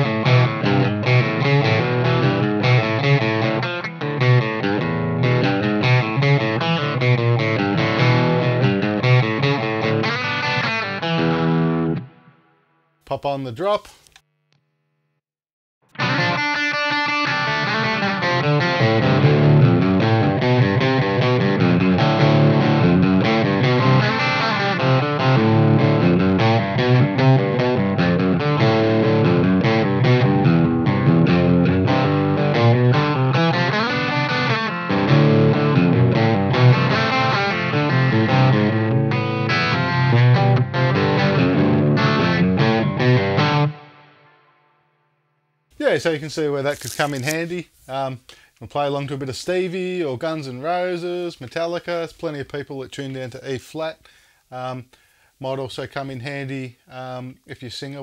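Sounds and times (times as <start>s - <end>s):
distorted electric guitar chords: 0.0s - 12.4s, 15.9s - 44.7s.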